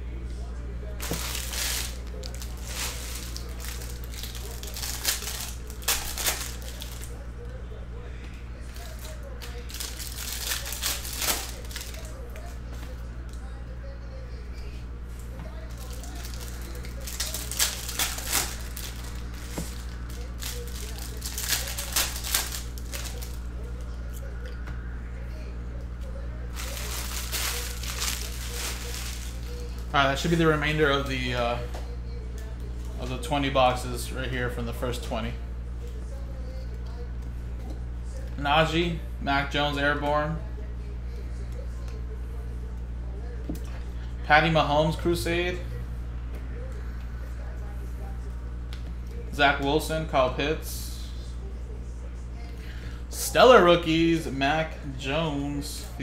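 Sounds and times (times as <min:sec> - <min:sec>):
low electrical hum: 0:00.0 - 0:56.0
foil wrappers crinkling: 0:01.0 - 0:07.2, 0:08.7 - 0:12.6, 0:15.2 - 0:23.9, 0:26.5 - 0:31.2.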